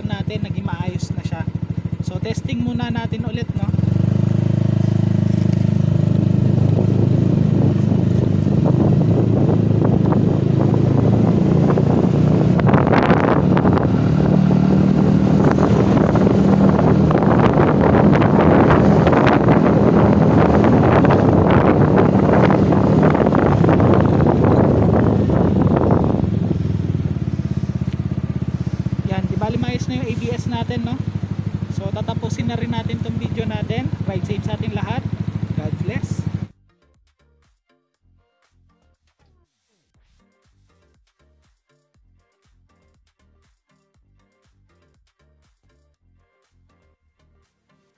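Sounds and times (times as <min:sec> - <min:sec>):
road noise: 0:00.0 - 0:36.5
scooter engine: 0:00.0 - 0:36.5
rushing wind: 0:03.7 - 0:36.5.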